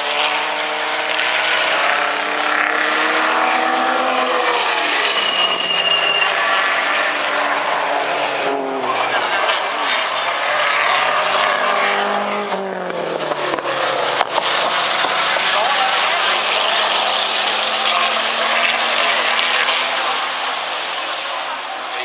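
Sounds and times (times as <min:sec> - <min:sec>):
car engines on circuit: 0:00.0 - 0:22.0
racing car passing by: 0:00.0 - 0:22.0.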